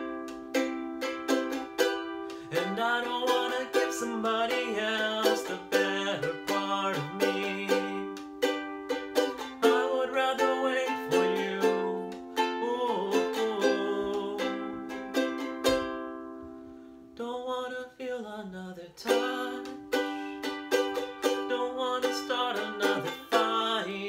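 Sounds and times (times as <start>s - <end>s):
ukulele strumming: 0.0s - 17.3s, 19.0s - 24.0s
man singing: 2.3s - 8.6s, 9.2s - 16.0s, 17.2s - 24.0s.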